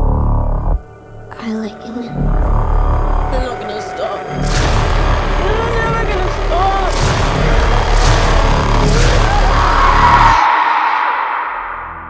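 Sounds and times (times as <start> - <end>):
deep pulsing rumble: 0.0 - 10.4
heavy hits: 4.3 - 10.9
rushing swell: 4.3 - 12.0.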